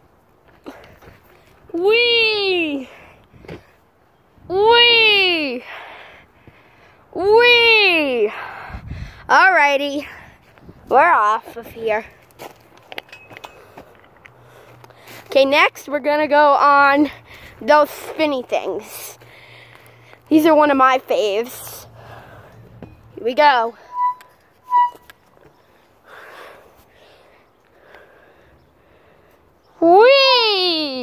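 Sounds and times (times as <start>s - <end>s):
footsteps on wood-chip mulch: 11.4s - 15.6s
playground spinner squeaking: 23.0s - 25.1s.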